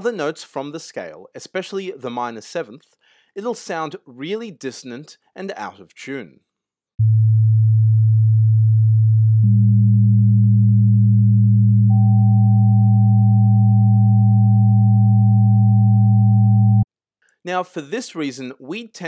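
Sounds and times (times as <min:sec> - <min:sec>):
high sine tone: 0:07.0 - 0:16.9
low sine tone: 0:07.0 - 0:16.9
middle sine tone: 0:07.0 - 0:16.9.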